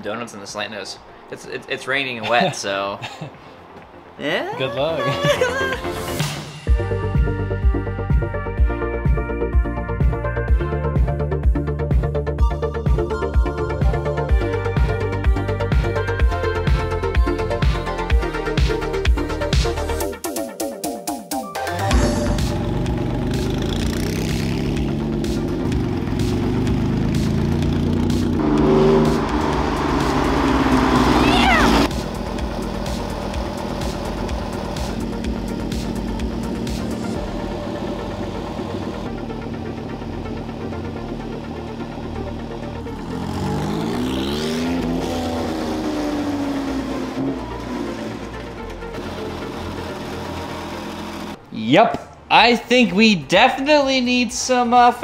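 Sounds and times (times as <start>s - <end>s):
car engine revving: 21.9s - 51.5s
electronic music: 24.9s - 49.7s.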